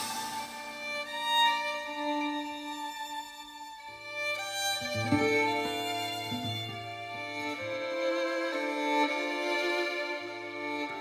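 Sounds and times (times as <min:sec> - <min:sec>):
quiet violin music: 0:00.0 - 0:11.0.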